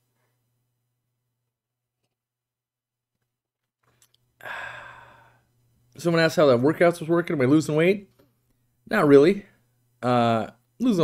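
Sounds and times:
man sighing: 0:04.4 - 0:05.5.

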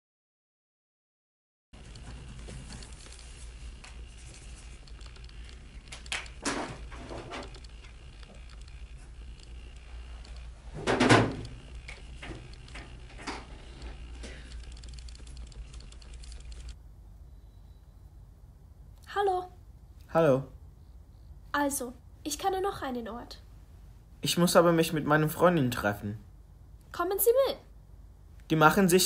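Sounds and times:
small sharp ticks and scratches: 0:01.8 - 0:10.6, 0:11.4 - 0:16.8
low steady hum: 0:01.8 - 0:29.0.

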